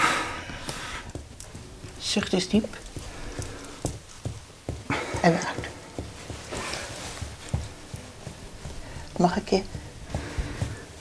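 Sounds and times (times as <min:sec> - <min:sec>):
person puffing air: 0:00.0 - 0:01.1, 0:04.8 - 0:07.1.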